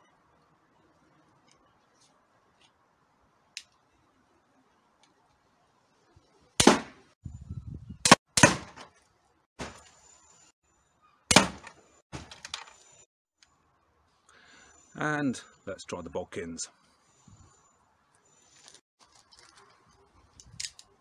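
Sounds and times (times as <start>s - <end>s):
crossbow bolts striking television: 11.3s - 12.6s.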